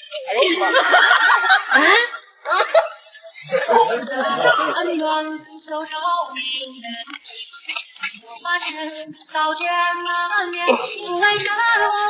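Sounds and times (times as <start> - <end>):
high singing voice: 3.4 - 12.0.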